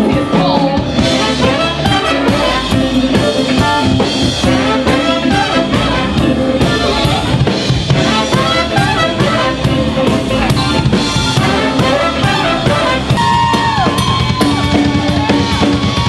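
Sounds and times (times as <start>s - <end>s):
drum kit beat: 0.0s - 16.0s
electric bass: 0.0s - 16.0s
horn section playing: 1.0s - 16.0s.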